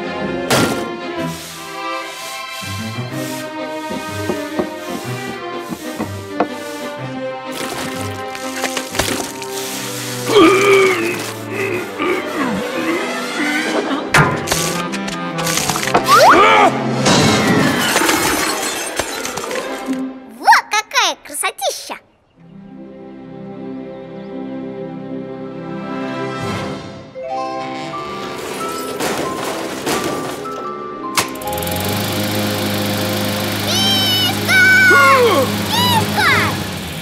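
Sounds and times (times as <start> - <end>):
background music: 0.0 - 18.3, 19.2 - 37.0
floor sanding machine humming: 1.2 - 10.3, 31.3 - 37.0
cartoon crash with clattering cans: 17.0 - 20.0, 28.6 - 30.6.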